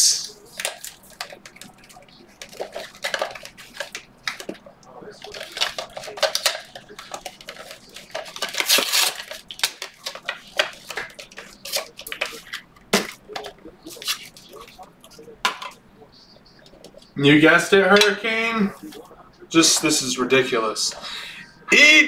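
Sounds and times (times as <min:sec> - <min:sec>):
card packaging clicks and rustles: 0:00.3 - 0:15.8.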